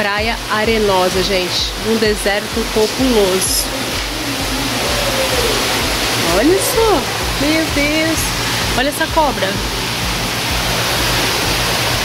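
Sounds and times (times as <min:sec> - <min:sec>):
water circulating and machinery: 0:00.0 - 0:12.0
faint voice: 0:03.4 - 0:07.1.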